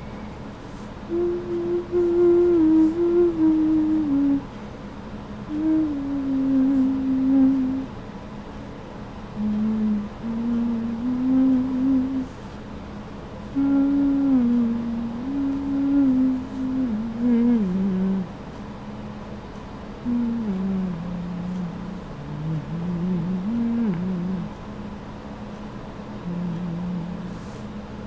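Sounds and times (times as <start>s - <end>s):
person humming a slow tune: 0.7s - 4.5s, 5.5s - 7.9s, 9.4s - 12.4s, 13.5s - 18.4s, 20.0s - 24.6s, 26.2s - 27.7s.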